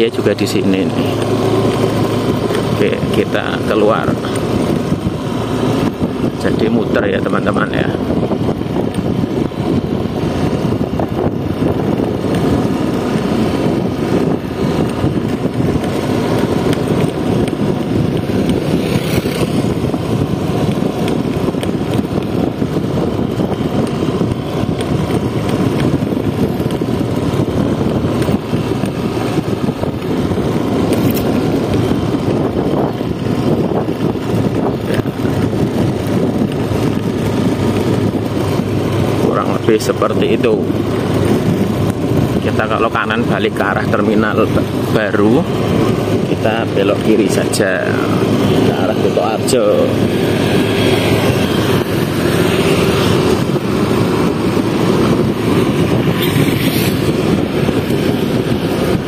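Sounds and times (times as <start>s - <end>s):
motorcycle engine drone: 0.0s - 59.0s
wind rush: 0.0s - 59.0s.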